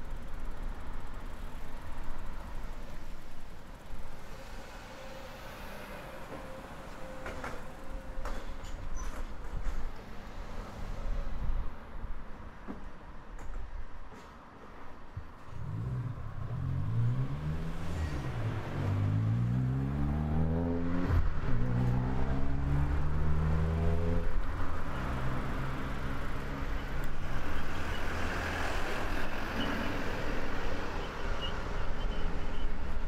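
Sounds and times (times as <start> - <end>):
traffic noise with tyre hiss: 0.0 - 33.0
vehicle engine accelerating: 15.5 - 26.7.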